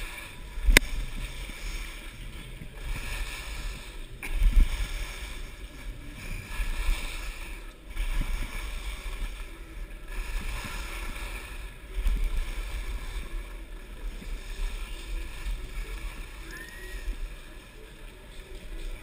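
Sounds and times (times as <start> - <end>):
low wind rumble on camera: 0.0 - 19.0
skis scraping over snow: 0.0 - 19.0.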